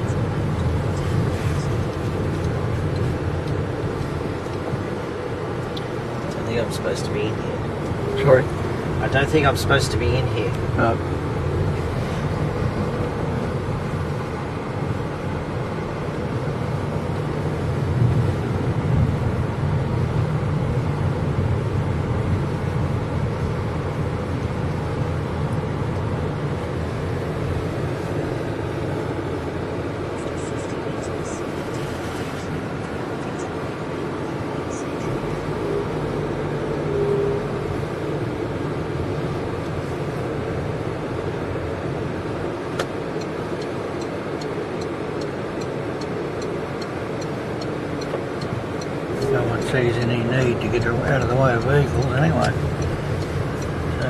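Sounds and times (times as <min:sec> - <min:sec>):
car engine hum: 0:00.0 - 0:54.0
road noise inside car: 0:00.0 - 0:54.0.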